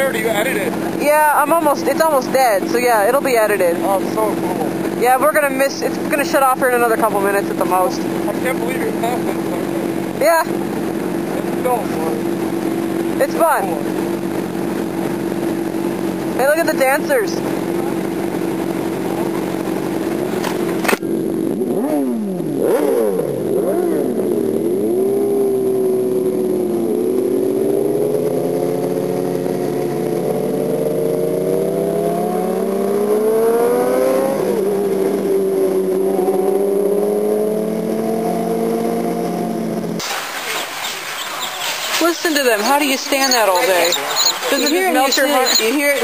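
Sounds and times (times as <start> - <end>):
motorcycle engines idling: 0.0 - 27.6, 39.5 - 46.0
motorcycle revving and pulling away: 0.0 - 46.0.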